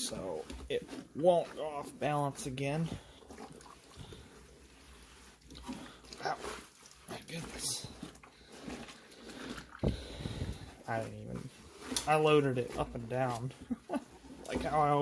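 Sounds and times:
wet clothes squelching and sloshing: 0.0s - 15.0s.

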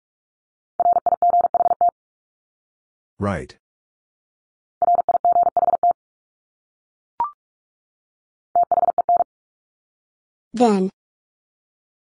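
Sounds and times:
morse code beeping: 0.8s - 1.9s, 4.8s - 6.0s, 8.6s - 9.2s.

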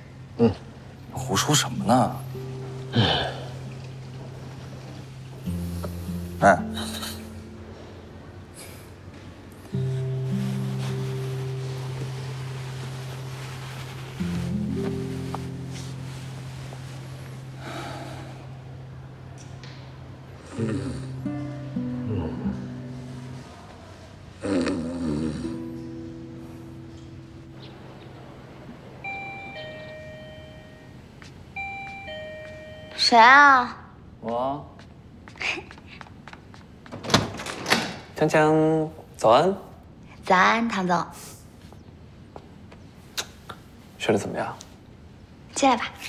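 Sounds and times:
soft sustained low chords: 1.1s - 8.6s
two-note doorbell chime: 2.4s - 8.0s, 29.0s - 33.6s.

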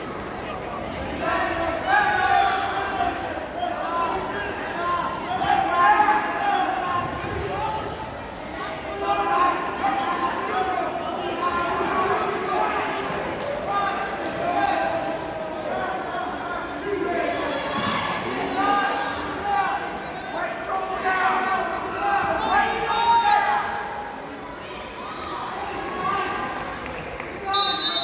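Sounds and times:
people shouting and chattering: 0.0s - 28.0s
referee's whistle: 27.5s - 28.0s.

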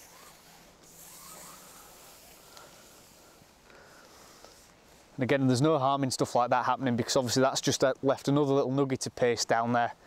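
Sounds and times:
faint rustling and rubbing: 0.0s - 5.8s
background hiss: 0.0s - 10.0s.

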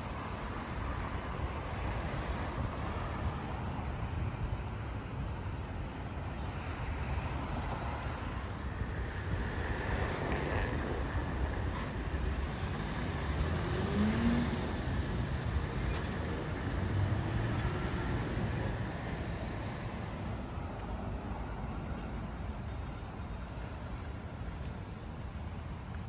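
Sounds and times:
city road traffic rumble: 0.0s - 26.0s.

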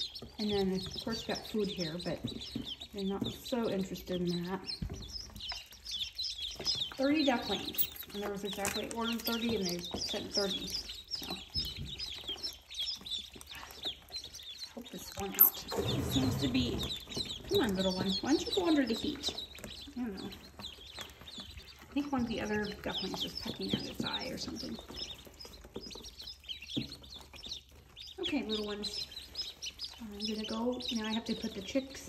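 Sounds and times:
ducklings peeping: 0.0s - 32.0s.

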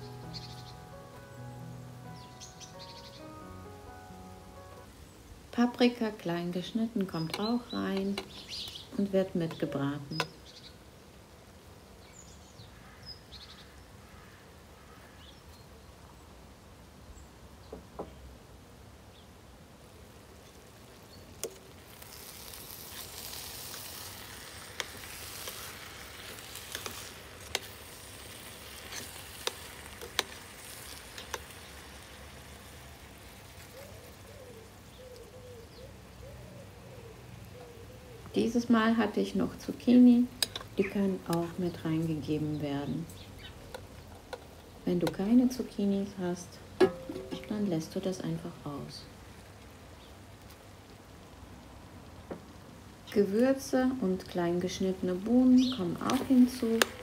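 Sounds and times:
vegetables sizzling in a pot: 0.0s - 12.4s, 19.7s - 36.2s, 37.0s - 57.0s.

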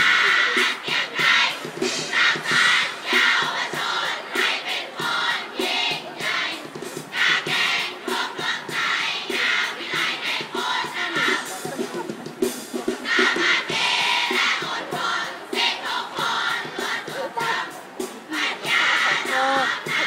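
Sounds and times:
children chanting a cheer: 0.0s - 11.6s, 13.0s - 20.0s
music: 0.0s - 20.0s.

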